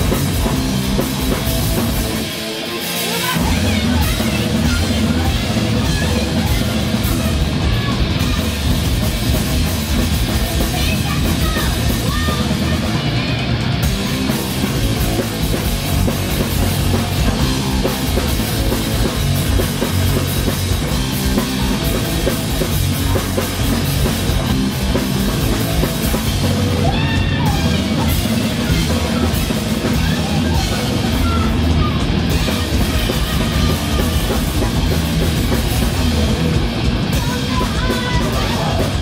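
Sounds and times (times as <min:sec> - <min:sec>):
pounding drum kit: 0:00.0 - 0:39.0
punk band playing: 0:00.0 - 0:39.0.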